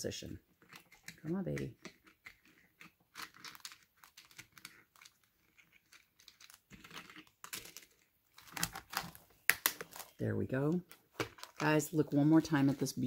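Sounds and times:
crinkly rustling: 0.5 - 13.0.

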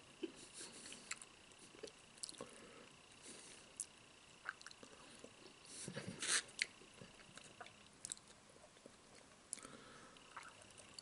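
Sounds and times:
man chewing: 0.2 - 2.6, 3.8 - 11.0.

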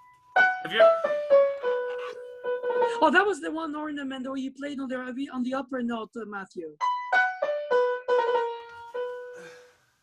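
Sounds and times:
piano notes: 0.0 - 3.1, 6.8 - 9.6.

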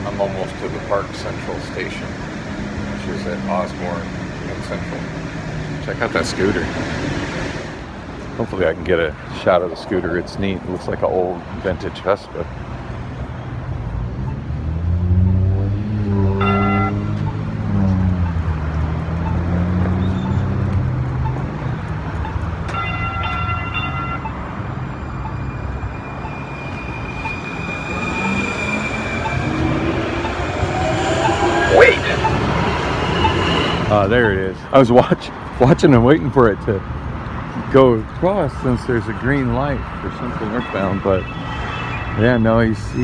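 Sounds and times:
engines revving: 0.0 - 8.1, 12.9 - 22.8, 24.2 - 36.2
heavy vehicle passing: 12.7 - 35.7
short pitched horn tones: 16.0 - 17.2.

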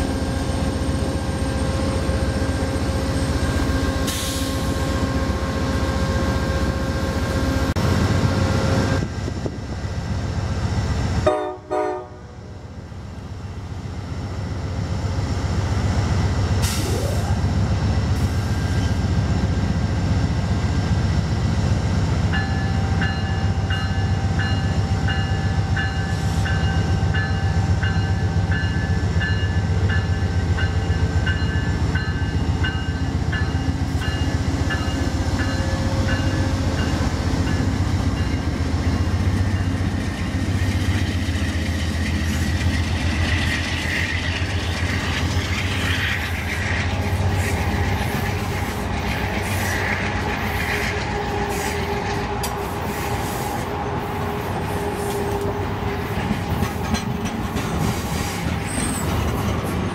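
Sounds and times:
train wheels rumbling and clacking: 0.0 - 59.9
locomotive bell ringing: 22.3 - 38.5
wheel squeal: 57.9 - 59.4.

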